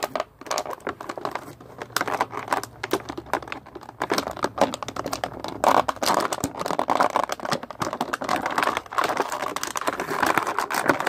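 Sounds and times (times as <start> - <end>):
hard plastic clicking and crinkling: 0.0 - 11.0.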